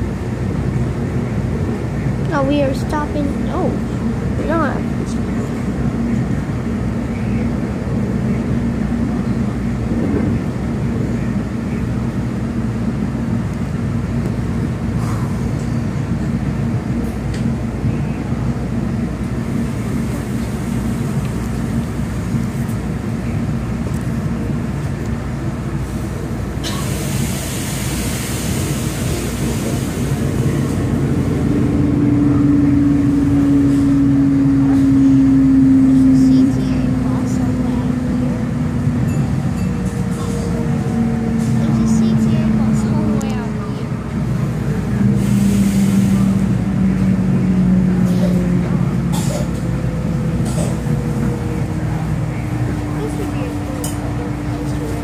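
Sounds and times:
train wheels rumbling: 0.0s - 55.0s
hiss: 26.7s - 30.1s.

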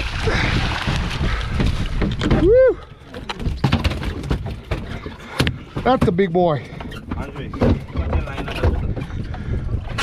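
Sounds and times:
knocks and thumps on boat deck: 0.3s - 10.0s
whoop rising and falling: 2.4s - 2.8s.

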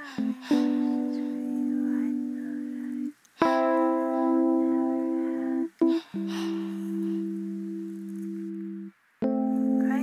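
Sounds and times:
low held chord of pure tones: 0.0s - 10.0s.

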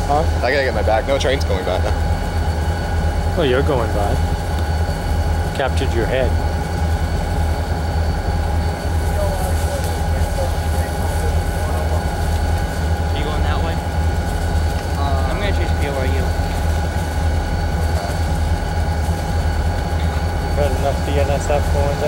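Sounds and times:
vehicle engine idling: 0.0s - 22.0s
faint voices: 3.3s - 22.0s.

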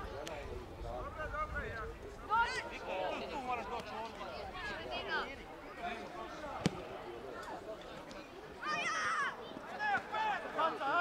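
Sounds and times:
football kick thud: 6.6s - 6.8s.

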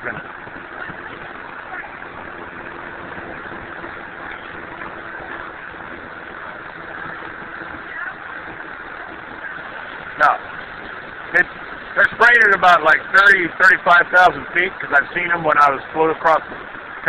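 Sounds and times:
steady background rush: 0.0s - 17.0s.

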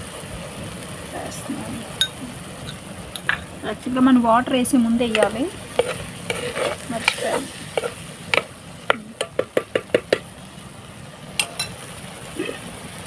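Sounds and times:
faint sizzle of simmering curry: 0.0s - 13.0s
ladle scraping and knocking pan: 5.1s - 10.2s.

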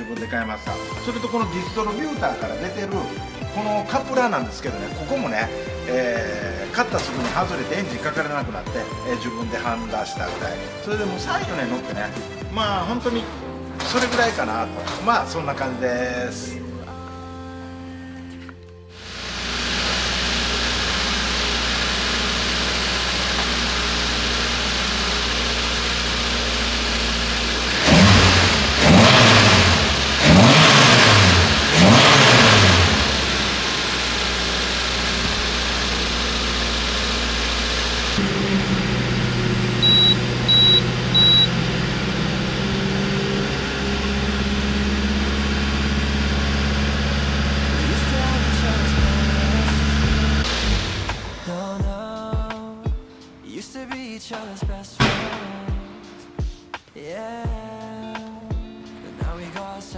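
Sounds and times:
car engine idling: 19.0s - 51.6s
engine revving: 19.0s - 51.6s
short high beeps: 39.8s - 41.5s.

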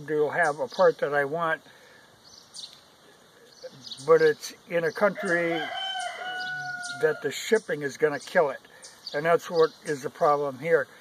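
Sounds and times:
faint bird chirps: 1.8s - 10.1s.

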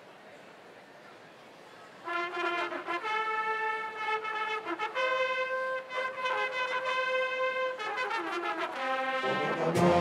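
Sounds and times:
brass instruments playing: 2.0s - 10.0s.

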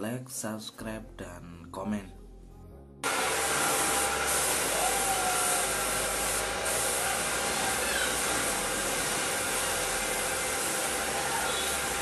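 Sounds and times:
spray gun hissing: 3.0s - 12.0s.

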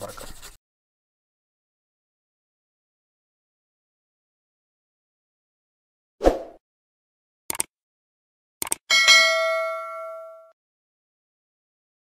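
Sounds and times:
bell-like ding: 8.9s - 10.6s.

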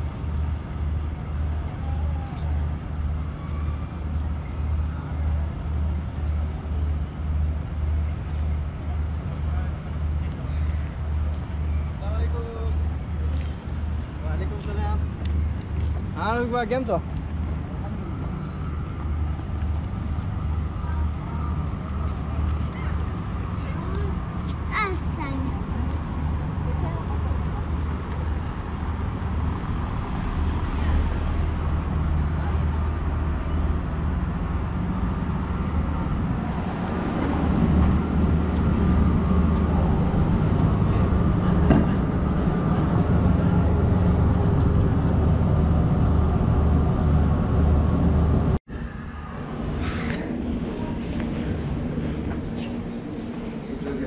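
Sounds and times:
low machine hum: 0.0s - 54.0s.

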